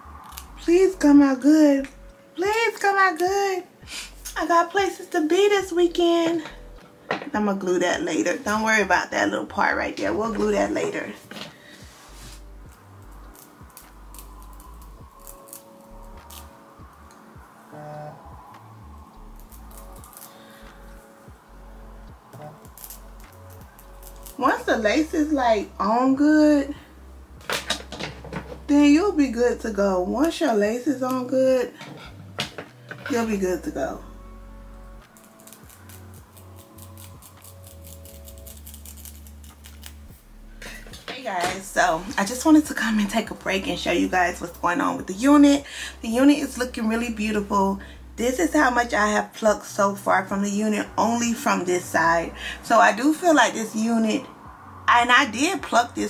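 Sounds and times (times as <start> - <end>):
razor blade snipping lace: 13.2 - 16.5, 19.4 - 20.4, 22.4 - 24.7, 35.0 - 40.0.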